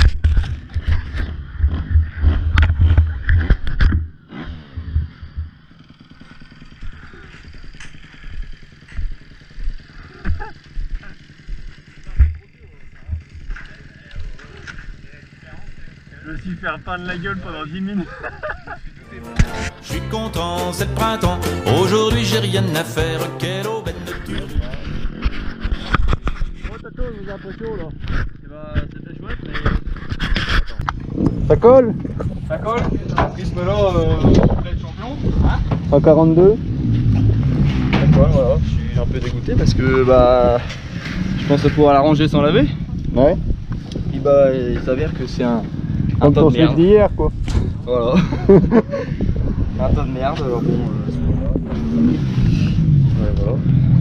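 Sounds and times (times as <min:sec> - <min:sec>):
wind noise on microphone: 0:00.0 - 0:05.5, 0:27.9 - 0:54.0
dirt bike engine: 0:00.0 - 0:54.0
indistinct voices talking: 0:04.6 - 0:54.0.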